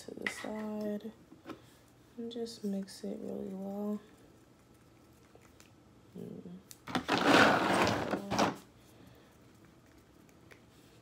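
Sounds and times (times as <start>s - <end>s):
stick scraping plastic cup: 6.9s - 8.5s.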